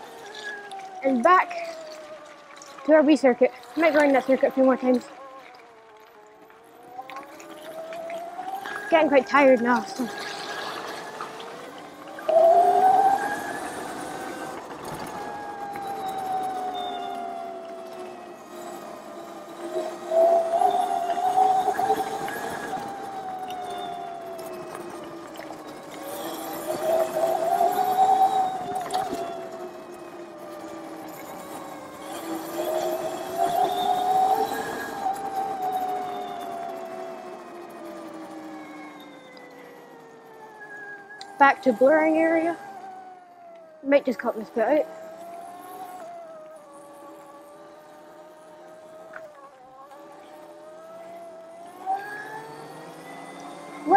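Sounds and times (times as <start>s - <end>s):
electric motor whining: 0.0s - 53.9s.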